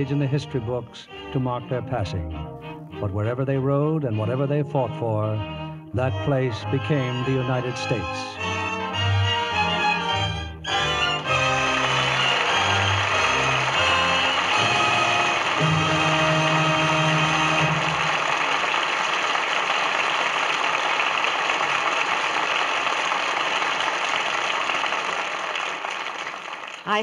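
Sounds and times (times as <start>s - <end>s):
orchestra playing: 0.0s - 22.7s
audience applause: 9.7s - 27.0s.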